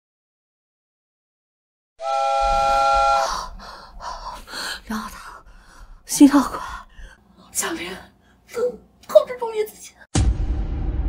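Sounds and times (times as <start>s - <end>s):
woman gasping: 3.2s - 7.2s.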